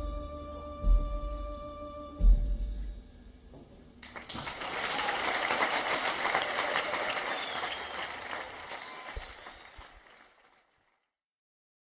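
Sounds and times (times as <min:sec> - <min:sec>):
audience applauding: 0:04.0 - 0:11.0.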